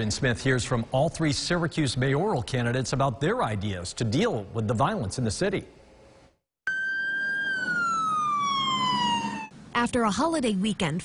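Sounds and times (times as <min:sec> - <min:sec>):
ambulance siren wailing: 0:06.6 - 0:09.5.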